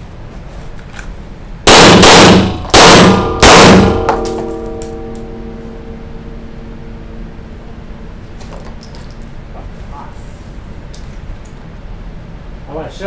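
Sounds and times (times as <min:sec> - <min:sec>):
gunshots: 0:01.7 - 0:04.6.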